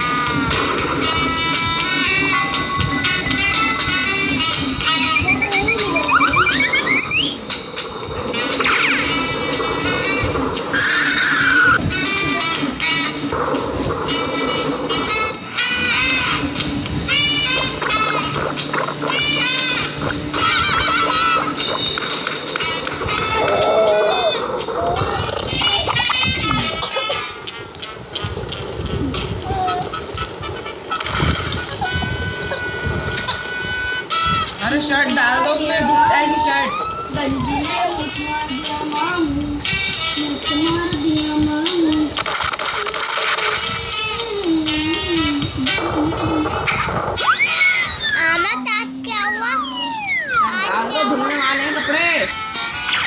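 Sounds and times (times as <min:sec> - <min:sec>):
cartoon background music: 0:00.0 - 0:53.0
cartoon sound effects: 0:04.9 - 0:07.4, 0:47.2 - 0:48.4, 0:49.2 - 0:51.4
high-pitched cartoon voices: 0:04.9 - 0:07.4, 0:35.1 - 0:39.4, 0:47.2 - 0:51.9
wavering voice-like sound effect: 0:05.0 - 0:07.4
falling pitch glide: 0:05.1 - 0:07.4.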